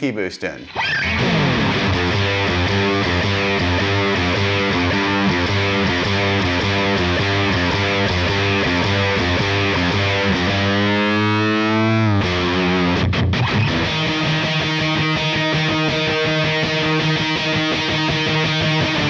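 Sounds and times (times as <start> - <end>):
distorted electric guitar riff: 0.6 - 19.0.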